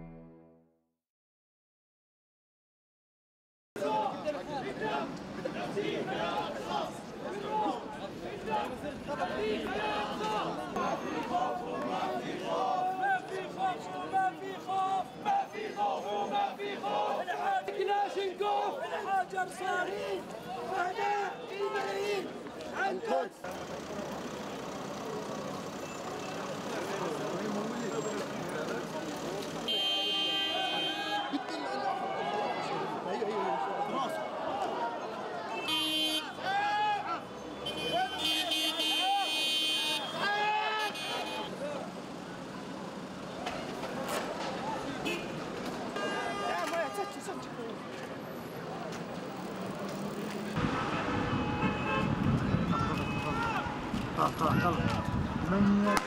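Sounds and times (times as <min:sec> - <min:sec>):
protest crowd voices: 0:03.8 - 0:56.0
traffic: 0:03.8 - 0:56.0
vehicle horns: 0:29.6 - 0:31.5, 0:35.5 - 0:36.6, 0:37.4 - 0:41.6, 0:44.9 - 0:47.4, 0:50.5 - 0:54.4.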